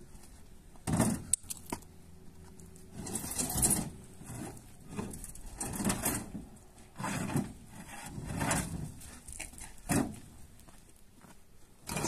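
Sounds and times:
footsteps on gravel: 8.9 - 12.0.

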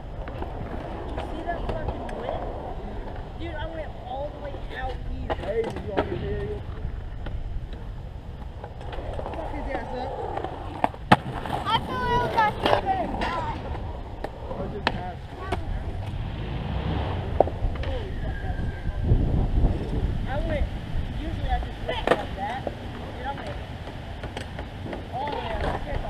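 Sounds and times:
skateboard wheels rolling on concrete: 0.0 - 26.0
skateboard clacking on concrete: 0.2 - 3.8, 4.4 - 6.1, 8.4 - 16.2, 21.8 - 26.0.

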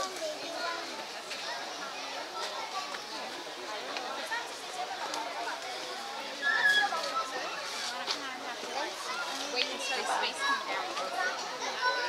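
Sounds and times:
children's voices: 0.0 - 12.0
people chattering: 0.0 - 12.0.

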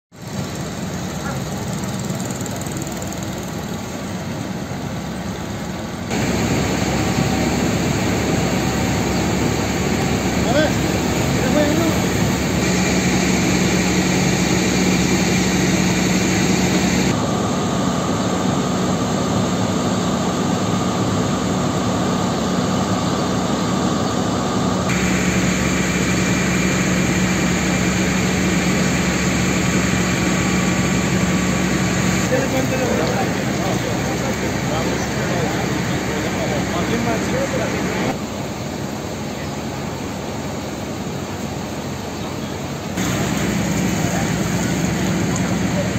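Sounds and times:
fire engine running: 0.1 - 45.9
high steady whine: 0.2 - 45.9.

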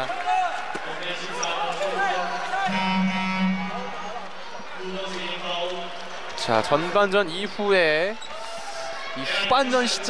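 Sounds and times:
voices in a hall: 0.0 - 10.0
steady low tone: 2.7 - 4.0.

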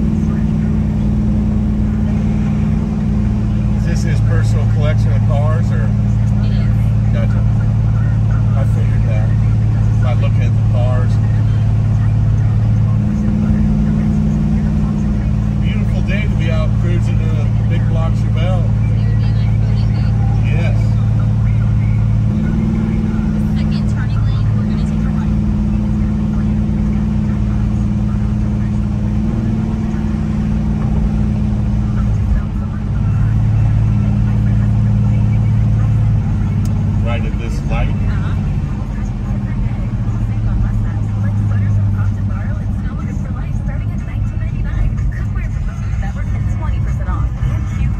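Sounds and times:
car engine heard from cabin: 0.0 - 47.9.

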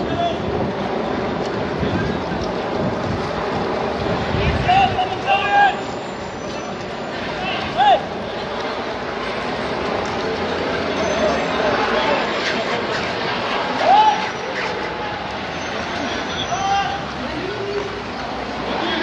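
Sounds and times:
wind buffeting microphone: 0.0 - 5.4
street noise: 0.0 - 19.0
people calling out: 10.9 - 18.0.

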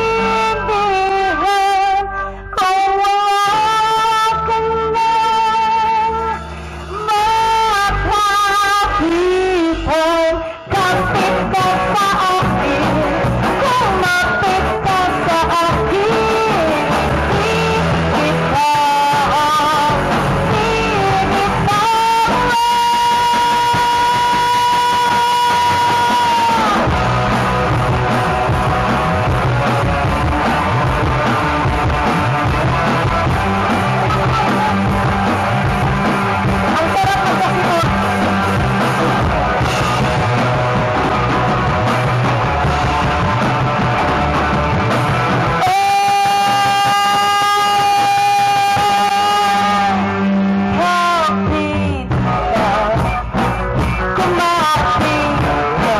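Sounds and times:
live rock band playing: 0.0 - 55.9.

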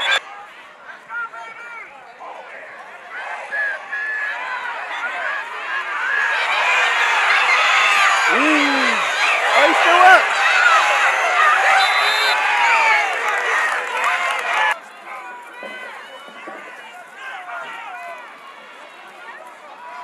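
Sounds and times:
scattered shouts and chatter: 0.0 - 20.0
spectators shouting and cheering: 0.0 - 20.0.

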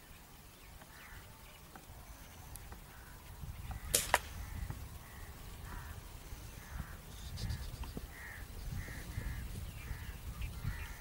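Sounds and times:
low rumble of wind: 0.0 - 11.0
air rifle firing cracks: 3.8 - 4.4.

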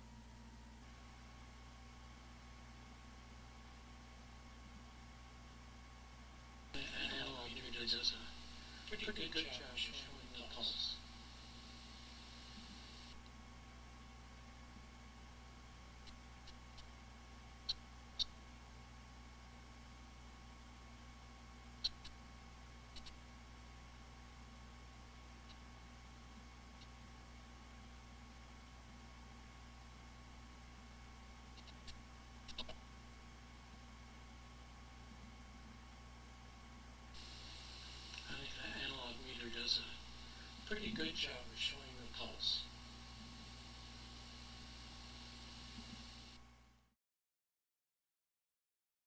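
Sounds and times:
faint electrical hum with hiss: 0.0 - 46.9
faint hiss: 6.8 - 13.2, 37.1 - 46.4.

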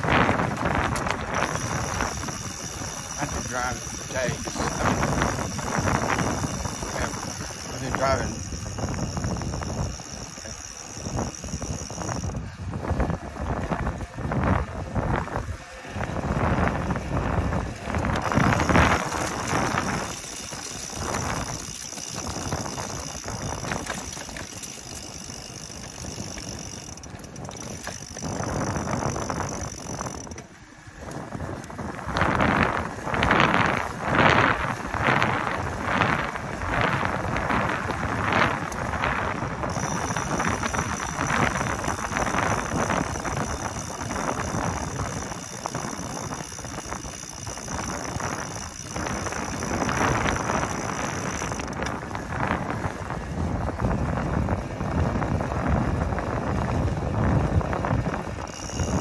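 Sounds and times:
bicycle mechanical clicking: 0.0 - 59.0
wind on microphone: 0.0 - 59.0
tyres rolling on pavement: 17.1 - 31.6.

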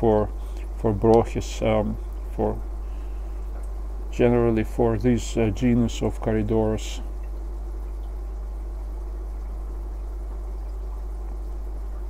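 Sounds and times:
aquarium filter hum: 0.0 - 12.0
water bubbling: 0.0 - 12.0.

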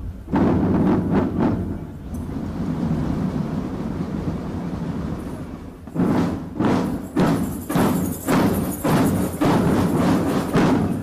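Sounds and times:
drum roll rumble: 0.0 - 11.0
heavy drum strokes: 0.0 - 11.0.

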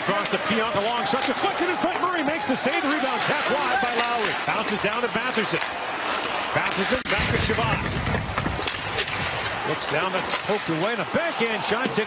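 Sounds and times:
hockey stick clicking on puck: 2.9 - 5.8, 6.6 - 11.2.

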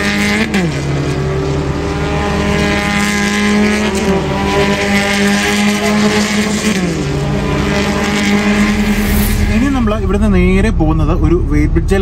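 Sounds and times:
race car engines: 0.0 - 12.0.

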